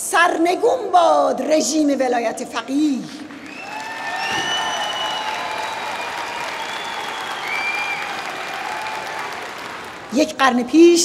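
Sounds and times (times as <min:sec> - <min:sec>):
large audience applauding: 0:03.3 - 0:10.2.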